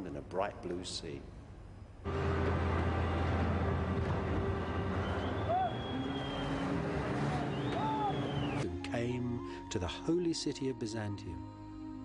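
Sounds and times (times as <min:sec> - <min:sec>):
boat engine droning: 0:02.1 - 0:08.6.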